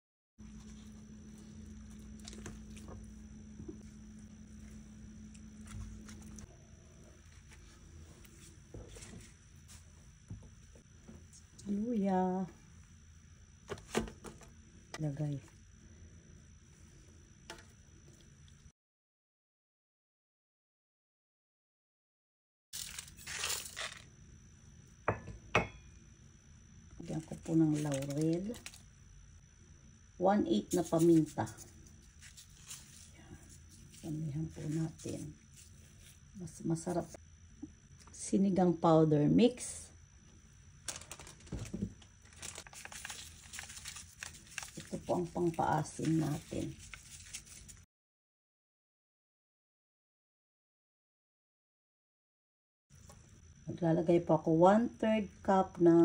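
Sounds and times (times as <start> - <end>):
low hum: 0.4 - 18.7
plastic sachet crinkling: 27.1 - 28.8, 40.8 - 47.8.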